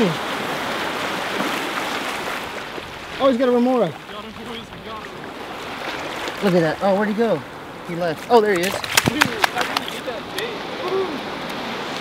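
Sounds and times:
surf washing over sand: 0.0 - 12.0.

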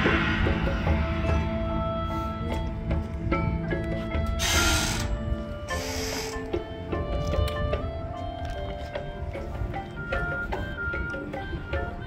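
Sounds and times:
noisy percussion effect bursts: 0.0 - 2.0.

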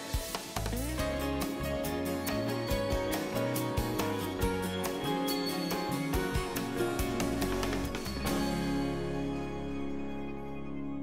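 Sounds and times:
theme music held chord: 1.0 - 11.0.

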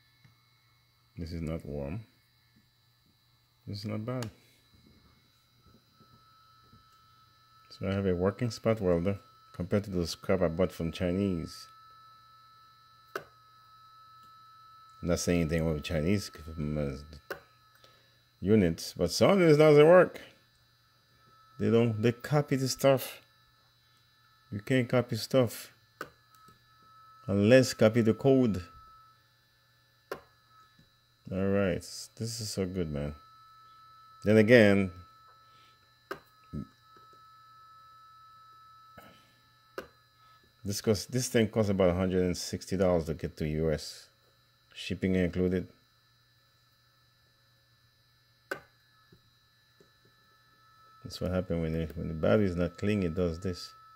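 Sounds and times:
spot welder snap: 13.0 - 13.3, 26.0 - 26.6, 30.1 - 30.4, 48.5 - 48.8
spot welder snapping: 30.1 - 30.3.

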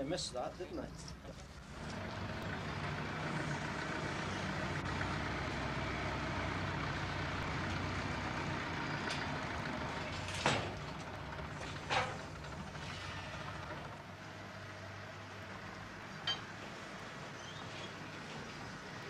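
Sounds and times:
heavy vehicle engine running: 1.1 - 19.0.

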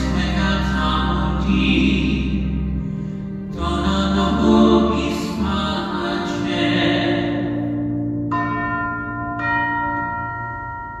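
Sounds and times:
low organ chord: 0.0 - 11.0
bell strikes: 8.3 - 11.0.

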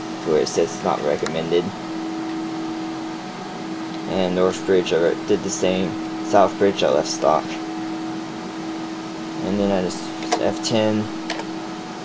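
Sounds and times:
computer cooling fans whirring: 0.0 - 12.0.

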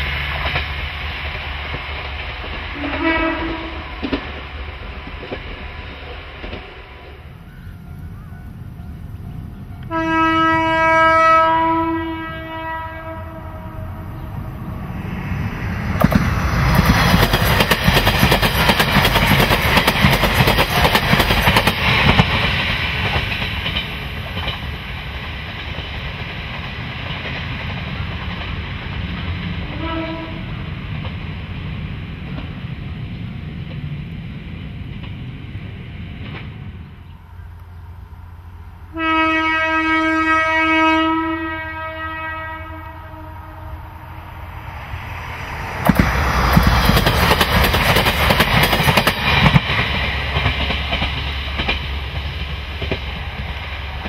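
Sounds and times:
diesel railcar running: 0.0 - 54.0
train horn blast: 2.7 - 4.1, 9.7 - 14.5, 29.6 - 30.6, 38.9 - 44.2.

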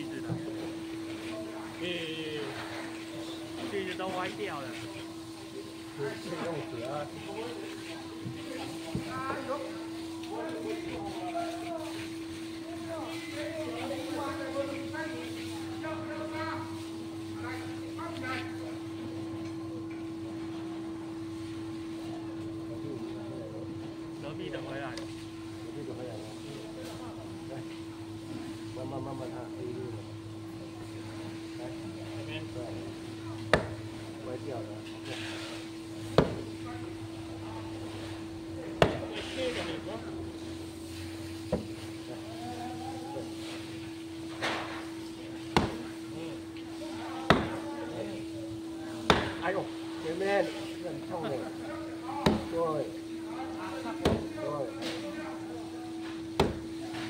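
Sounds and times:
mallet knocking on knife: 36.2 - 36.4, 47.3 - 47.5, 54.0 - 54.2, 56.4 - 56.6.

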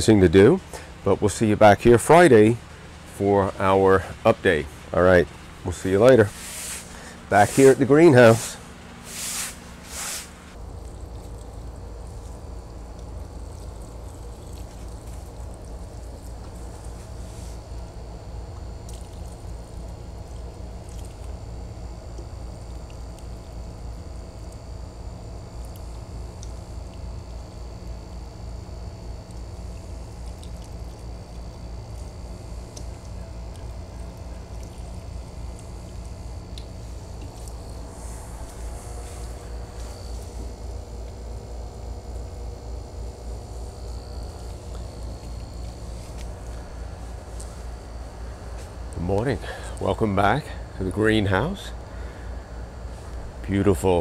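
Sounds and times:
steady low hum with high whine: 0.0 - 54.0
liquid trickling and clicks: 18.5 - 21.5, 22.1 - 24.7, 25.5 - 27.5, 28.9 - 38.6.

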